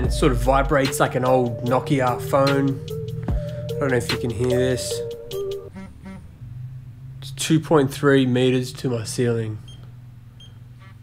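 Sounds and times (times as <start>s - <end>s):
background music: 0.0s - 6.3s.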